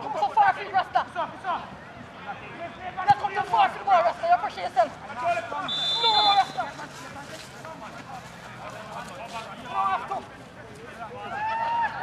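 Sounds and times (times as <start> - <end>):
voices calling out: 1.6 - 10.3
referee's whistle blast: 5.7 - 6.6.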